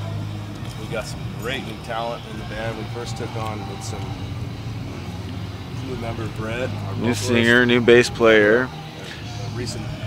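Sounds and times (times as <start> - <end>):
faint voices: 0.0 - 10.0
low outdoor hum: 0.0 - 10.0.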